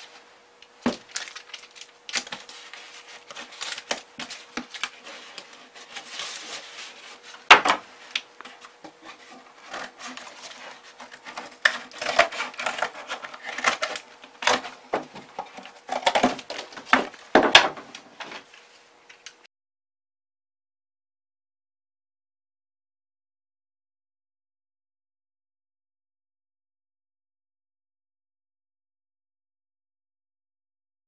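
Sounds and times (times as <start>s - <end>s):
cardboard and tape handled: 0.0s - 19.3s.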